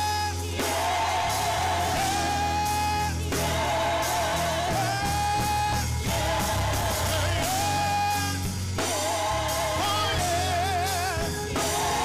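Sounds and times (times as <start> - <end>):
group singing a worship song: 0.0 - 12.0
keyboard accompaniment: 0.0 - 12.0.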